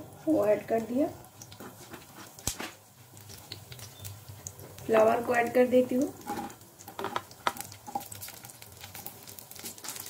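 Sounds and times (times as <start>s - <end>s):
oil sizzling: 0.0s - 10.0s
food pieces tapping in pan: 1.3s - 10.0s.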